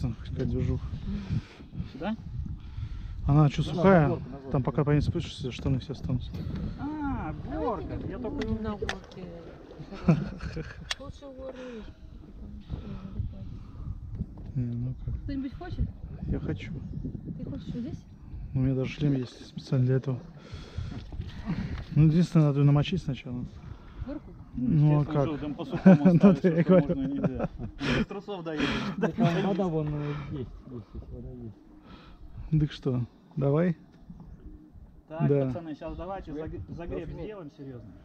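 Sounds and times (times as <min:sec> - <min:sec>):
low steady background noise: 0:00.0 - 0:38.0
people talking quietly: 0:00.0 - 0:38.0
people talking: 0:24.1 - 0:31.6.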